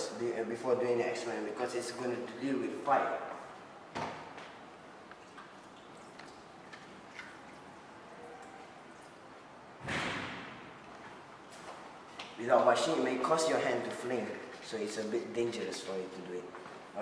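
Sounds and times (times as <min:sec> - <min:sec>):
hands washing under water: 0:05.0 - 0:07.9.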